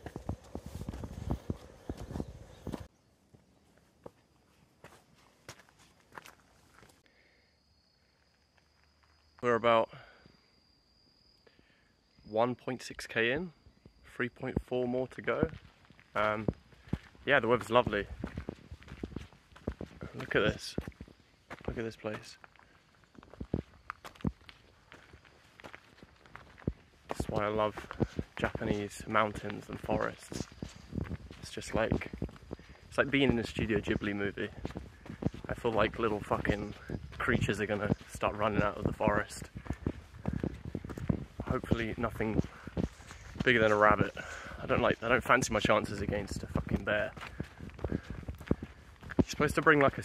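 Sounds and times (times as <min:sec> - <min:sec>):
footsteps on dirt and rock: 0:00.0 - 0:07.0, 0:14.6 - 0:50.0.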